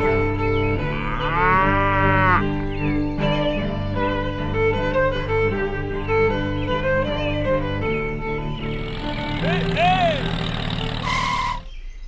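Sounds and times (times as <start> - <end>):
background music: 0.0 - 11.7
long farm animal call: 0.7 - 2.6.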